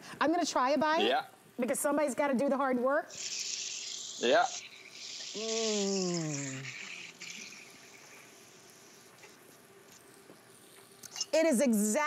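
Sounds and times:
steaks sizzling in grill pan: 0.8s - 12.0s.

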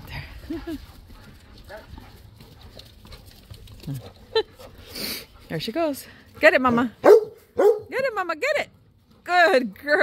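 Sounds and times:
dogs scrambling on dirt: 0.0s - 7.7s.

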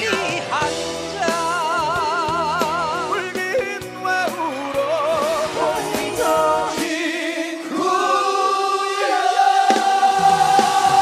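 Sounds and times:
music with singing voices: 0.0s - 11.0s.

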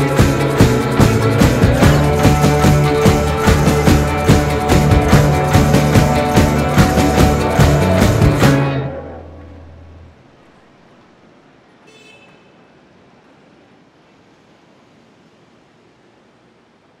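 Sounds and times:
faint city ambience: 0.0s - 17.0s
distant car horn toot: 11.8s - 12.7s.

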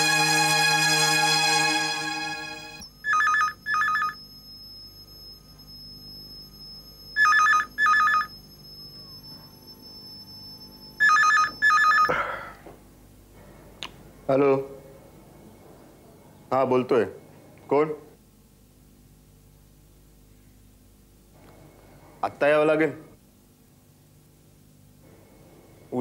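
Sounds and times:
telephone ringing: 2.8s - 4.4s, 7.1s - 9.1s, 10.9s - 12.1s.

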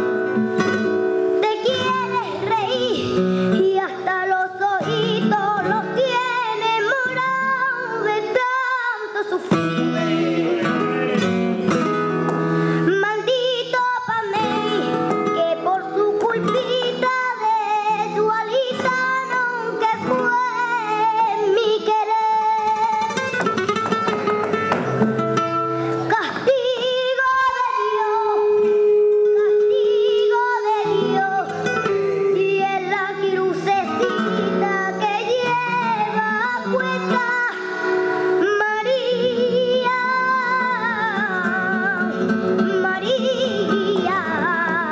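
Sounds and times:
flamenco guitar strummed and plucked: 0.0s - 44.9s
girl singing into a microphone: 1.3s - 10.6s, 12.6s - 23.6s, 25.8s - 44.9s.

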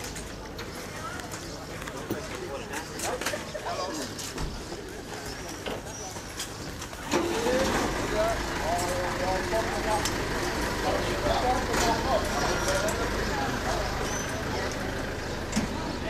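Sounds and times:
people talking: 0.0s - 16.0s
vehicle engine idling: 7.1s - 16.0s.

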